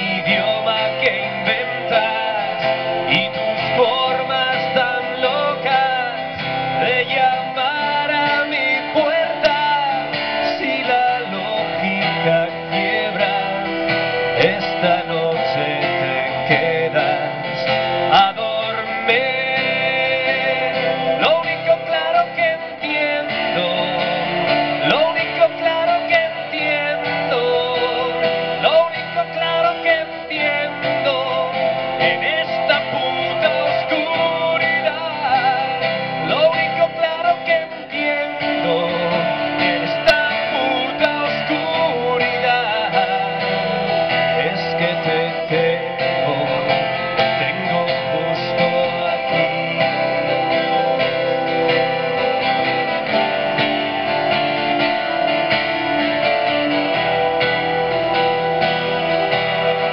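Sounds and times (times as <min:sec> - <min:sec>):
live band music: 0:00.0 - 0:59.9
strummed acoustic guitar: 0:00.0 - 0:59.9.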